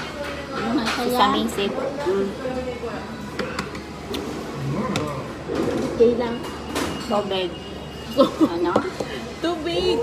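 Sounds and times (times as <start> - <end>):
restaurant background noise: 0.0 - 10.0.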